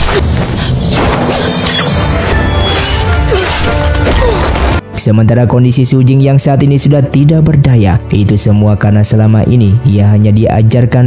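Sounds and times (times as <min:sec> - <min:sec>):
dense loud film score: 0:00.0 - 0:06.8.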